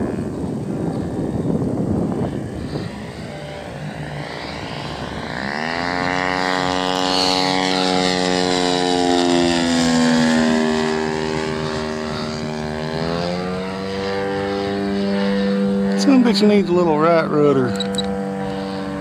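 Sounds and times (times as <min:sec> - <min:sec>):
model plane engine and propeller: 0:00.0 - 0:19.0.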